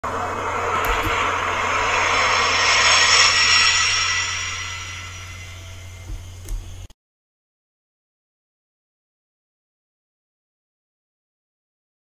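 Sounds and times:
rushing whoosh: 0:00.0 - 0:06.1
steady low hum: 0:00.0 - 0:06.9.

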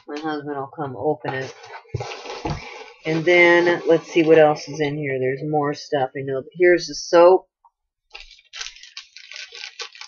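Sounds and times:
packaging rustling and crinkling: 0:01.5 - 0:03.3, 0:08.2 - 0:10.0.

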